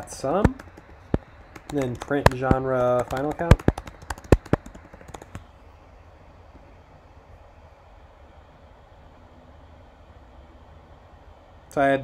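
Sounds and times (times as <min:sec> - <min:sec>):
low steady room hum: 0:00.0 - 0:12.0
typing on computer keyboard: 0:00.4 - 0:05.4.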